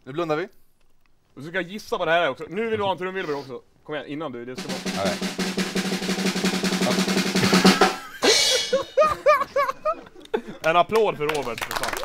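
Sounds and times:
person speaking: 0:04.6 - 0:05.4
snare drum roll: 0:04.6 - 0:08.8.

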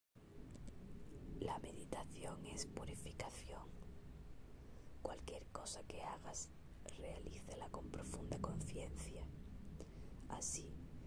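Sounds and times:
faint low background noise: 0:00.2 - 0:11.0
person whispering: 0:01.4 - 0:03.7, 0:05.0 - 0:09.3, 0:10.3 - 0:10.8.

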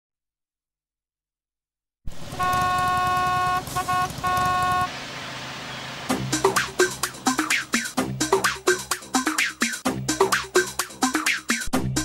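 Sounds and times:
car horn honking: 0:02.3 - 0:04.9.

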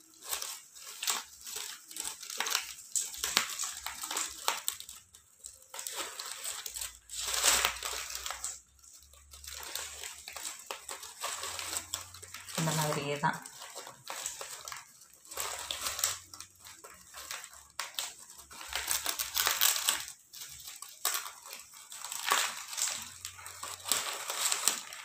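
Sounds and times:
plastic strips rustling and crinkling: 0:00.0 - 0:25.0.

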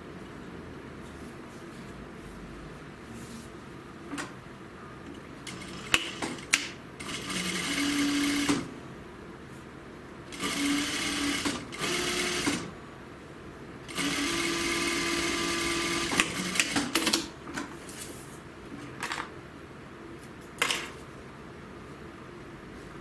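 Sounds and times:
sewing machine stitching: 0:05.5 - 0:08.7, 0:10.3 - 0:12.7, 0:13.9 - 0:17.2.

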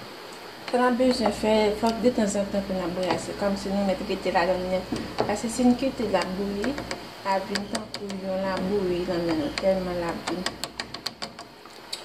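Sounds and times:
spatula tapping a steel saucepan: 0:06.0 - 0:11.5.

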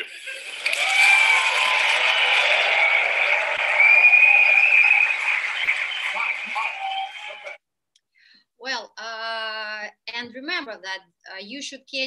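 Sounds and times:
audience applauding: 0:00.0 - 0:07.6
speaker saying thank you: 0:05.6 - 0:07.6.

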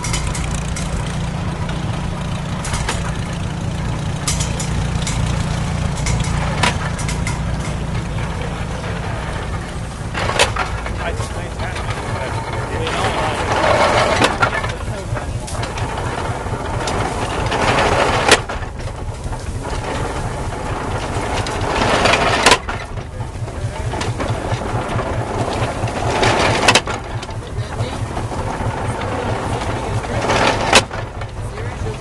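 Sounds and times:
hay baler clatter and crack: 0:00.0 - 0:32.0
tractor engine pulsing: 0:00.0 - 0:32.0.

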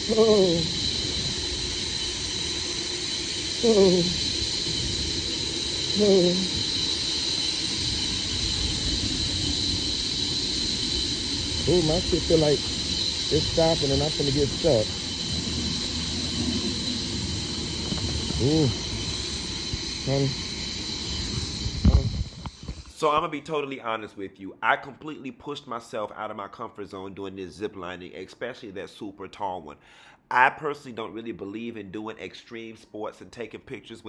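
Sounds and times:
wind on microphone: 0:00.0 - 0:22.9
zip-line trolley whirring on cable: 0:00.0 - 0:22.9.

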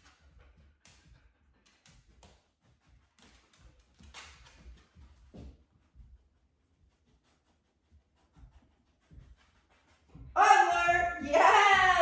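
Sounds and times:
dog moving on hard floor: 0:00.0 - 0:06.3.

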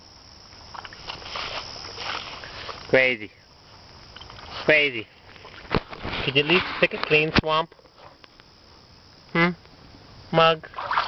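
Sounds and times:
dog splashing in muddy water: 0:10.7 - 0:11.0.

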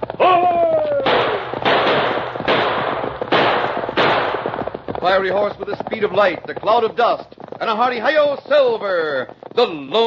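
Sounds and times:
gunshots: 0:00.0 - 0:06.6
man shouting: 0:00.2 - 0:01.2.

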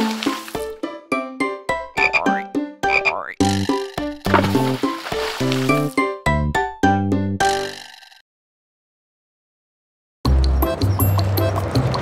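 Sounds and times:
bouncy instrumental music: 0:00.0 - 0:07.7
cartoon frog croaks: 0:02.0 - 0:03.6.

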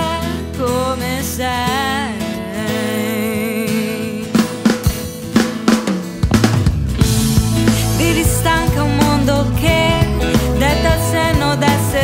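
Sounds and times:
pop-rock band playing: 0:00.0 - 0:12.0
drum kit fill: 0:04.3 - 0:12.0
sustained chords: 0:06.3 - 0:11.2.

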